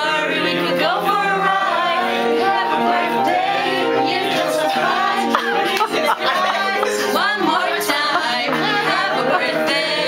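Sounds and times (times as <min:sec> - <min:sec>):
people singing together: 0:00.0 - 0:10.0.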